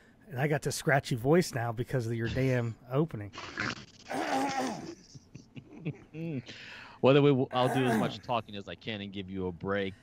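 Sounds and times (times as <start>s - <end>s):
men laughing: 4.7s - 6.5s.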